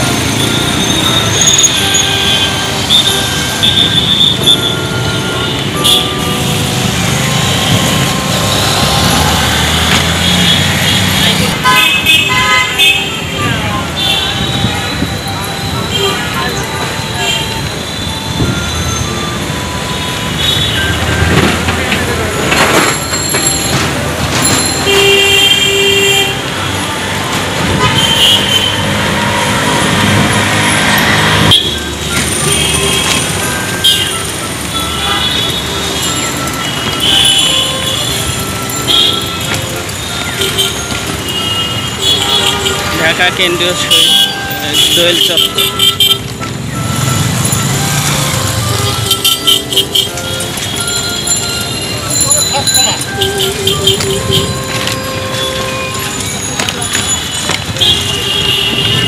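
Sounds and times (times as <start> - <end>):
city road traffic: 0.0 - 59.0
motorcycle and rickshaw engines: 0.0 - 59.0
vehicle horns honking: 0.0 - 59.0.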